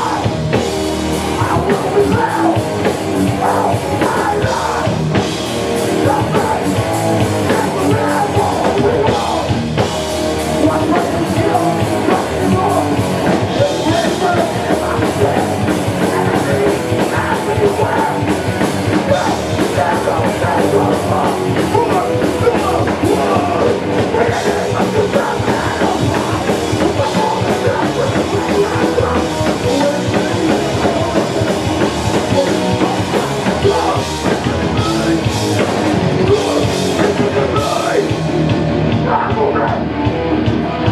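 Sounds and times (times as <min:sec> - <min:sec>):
singer shouting vocals: 0:00.0 - 0:00.5, 0:01.2 - 0:05.2, 0:05.8 - 0:09.7, 0:10.5 - 0:18.3, 0:18.9 - 0:38.2, 0:38.9 - 0:40.0
distorted electric guitars: 0:00.0 - 0:40.9
fast drum kit: 0:00.0 - 0:40.9
punk band playing live: 0:00.0 - 0:40.9.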